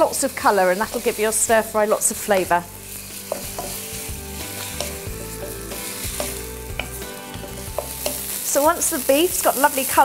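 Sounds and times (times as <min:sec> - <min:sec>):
meat and onion sizzling in oil: 0:00.0 - 0:10.0
wooden spoon tapping and scraping pan: 0:03.2 - 0:08.9.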